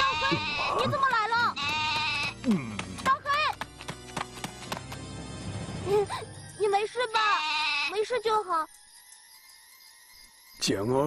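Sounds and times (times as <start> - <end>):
goat bleating: 0.0 - 2.4, 7.1 - 8.0
background music: 0.0 - 11.0.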